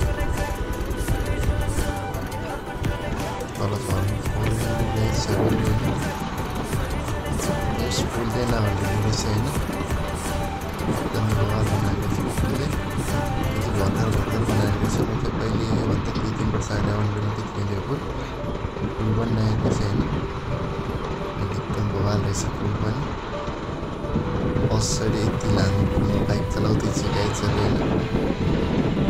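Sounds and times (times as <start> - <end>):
background music: 0.0 - 29.0
motorcycle engine running: 0.0 - 29.0.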